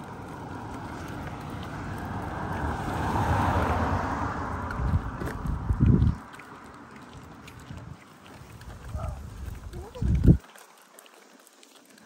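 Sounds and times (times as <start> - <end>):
wind buffeting microphone: 0.4 - 6.3, 7.6 - 10.4.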